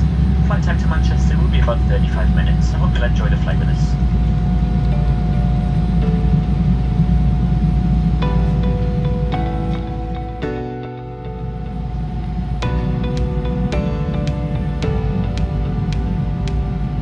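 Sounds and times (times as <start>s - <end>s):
airliner cabin rumble: 0.0s - 17.0s.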